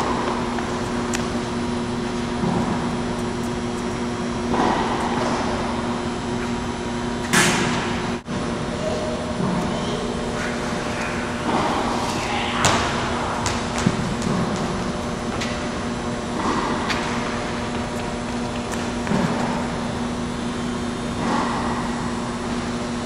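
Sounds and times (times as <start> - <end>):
ventilation hum: 0.0 - 23.0.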